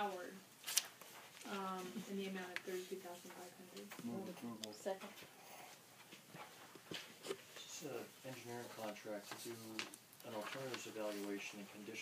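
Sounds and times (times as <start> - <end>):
faint taps and ticks: 2.4 - 5.3.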